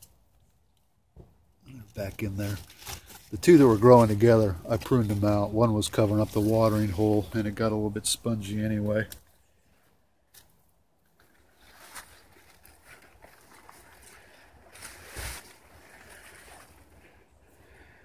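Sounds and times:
rustling of foliage: 0.0s - 18.0s.

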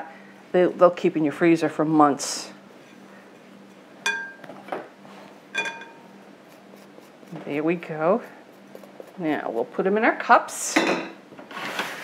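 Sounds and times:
metal spoon clinking on glass bowl: 4.0s - 4.4s, 5.6s - 6.0s
soft scrape of crumbs: 11.5s - 12.0s.

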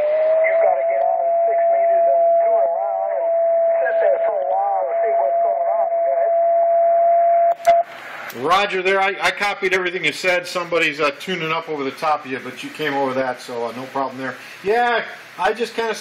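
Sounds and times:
radio voice from speaker: 0.0s - 6.5s
steady radio whistle: 0.0s - 7.9s.

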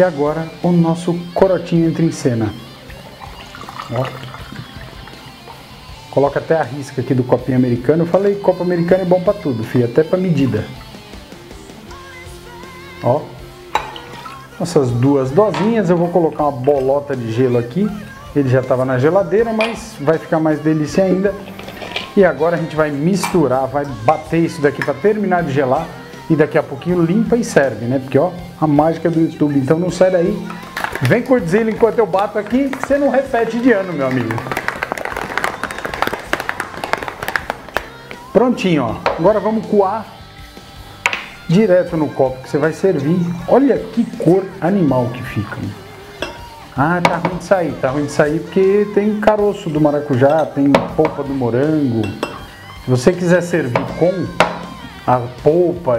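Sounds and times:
soft background music: 0.0s - 55.9s
liquid pouring: 2.5s - 5.9s, 13.8s - 14.6s, 30.4s - 37.7s
ice rattling in cocktail shaker: 2.9s - 5.5s, 21.4s - 22.2s, 30.5s - 31.2s, 32.2s - 37.7s.

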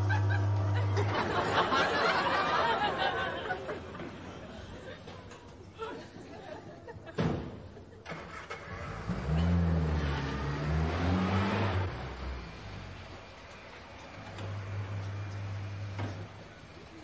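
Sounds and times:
car engine starting and revving: 8.0s - 16.3s.

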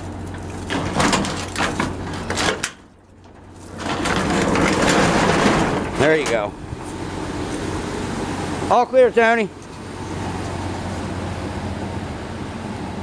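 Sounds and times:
engine running low: 0.0s - 13.0s
rough scraping noise: 3.3s - 7.8s.

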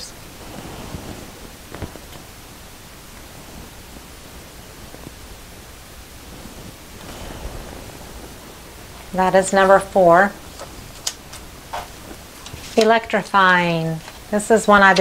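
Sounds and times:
background hiss: 0.0s - 15.0s
canvas rustling: 0.0s - 15.0s.

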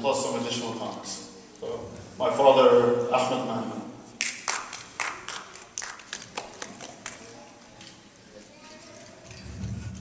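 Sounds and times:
people clapping: 4.2s - 7.4s.

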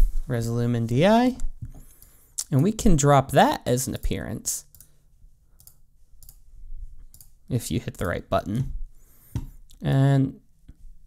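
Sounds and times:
computer mouse clicks: 4.6s - 4.9s, 5.6s - 6.4s, 7.1s - 7.4s.

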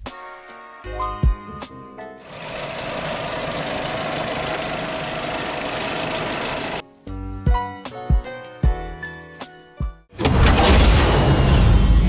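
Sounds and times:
car engine running: 2.2s - 6.8s.

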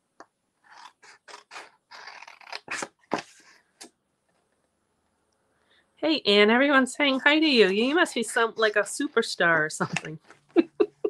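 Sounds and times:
scissors snipping paper: 0.7s - 3.4s.

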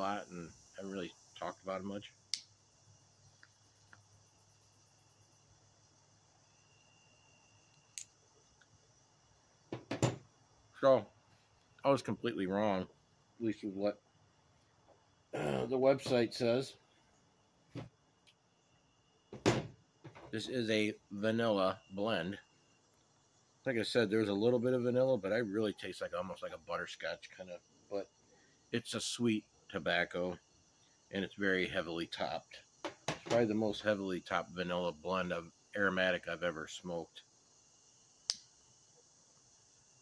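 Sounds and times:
crickets chirring: 0.0s - 40.0s
lighter click: 38.2s - 38.5s.

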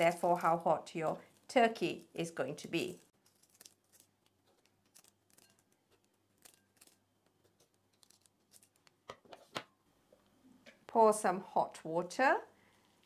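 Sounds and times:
scissors snipping dried chillies: 2.8s - 7.0s, 7.6s - 9.0s.

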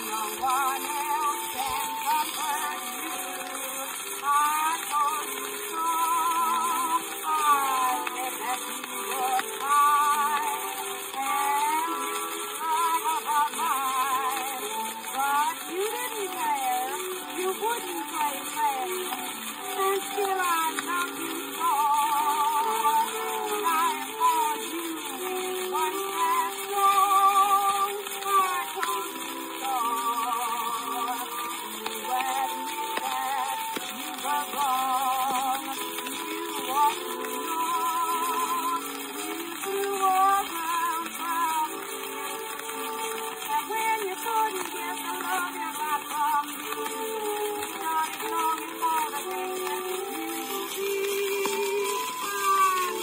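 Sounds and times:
record surface hiss: 0.0s - 53.0s
soprano singing with vibrato: 0.0s - 53.0s.

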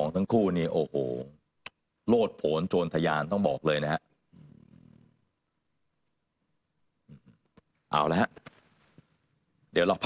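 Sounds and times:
small mouth sounds: 4.3s - 5.3s, 7.0s - 7.7s.

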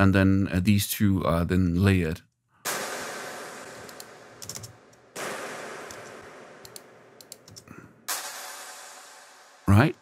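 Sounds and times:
layered clap with reverb tail: 2.7s - 7.4s, 8.1s - 9.7s.

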